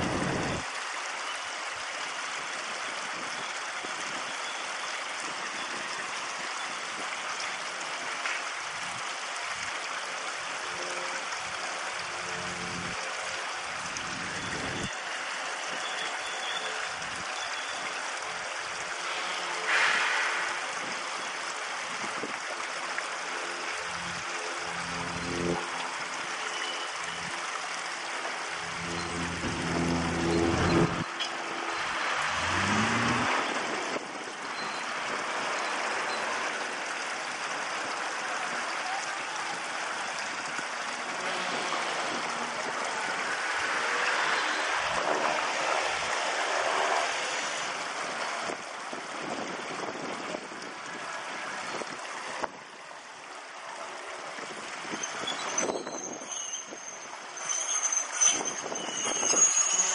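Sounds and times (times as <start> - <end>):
diesel locomotive engine running: 28.2 - 33.8.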